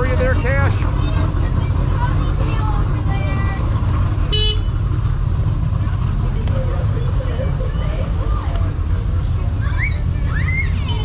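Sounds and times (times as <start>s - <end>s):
idling trucks rumbling: 0.0s - 11.0s
vehicle horn toot: 4.3s - 4.8s.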